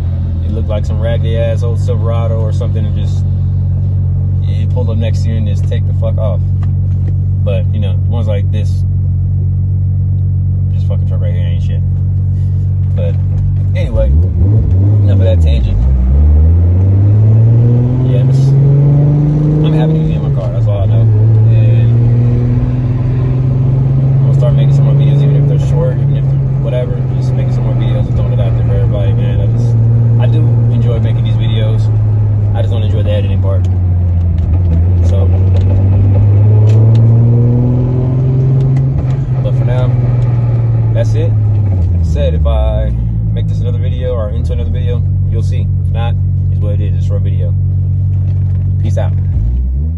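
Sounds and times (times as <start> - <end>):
car engine revving: 0.0 - 49.9.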